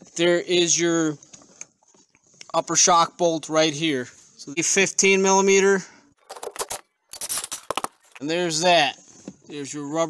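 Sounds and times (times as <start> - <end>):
metal nut and washer clinking: 6.2 - 8.2.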